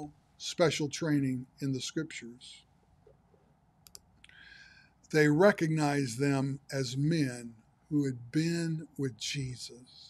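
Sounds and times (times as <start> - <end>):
faint hiss: 0.0 - 3.2, 3.9 - 10.0.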